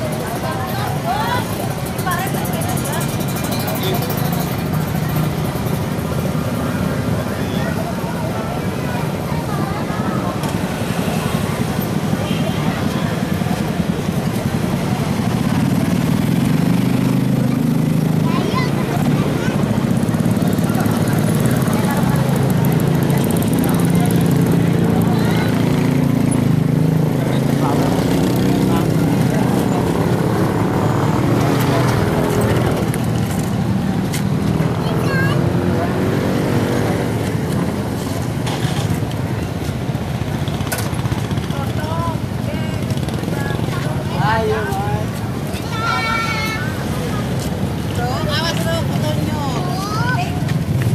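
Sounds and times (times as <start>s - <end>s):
motorcycles and scooters passing: 0.0s - 50.9s
people talking: 0.0s - 50.9s.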